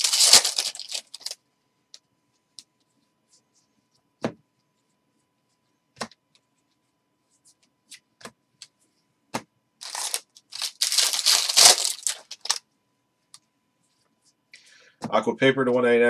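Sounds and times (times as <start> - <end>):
foil wrapper tearing and crinkling: 0.0 - 1.4, 9.8 - 12.6.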